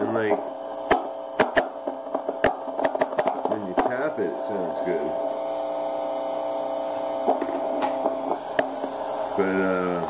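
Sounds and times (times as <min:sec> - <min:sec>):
amplifier hum: 0:00.0 - 0:10.0.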